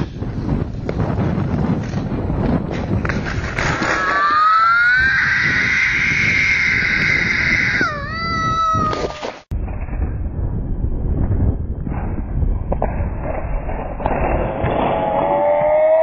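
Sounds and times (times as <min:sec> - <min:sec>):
child screaming: 0:04.0 - 0:09.4.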